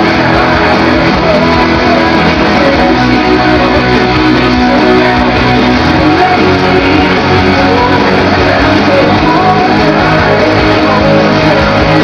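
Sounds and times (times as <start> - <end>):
electric guitar strumming rock chords: 0.0 - 12.0
recorded rock band music: 0.0 - 12.0.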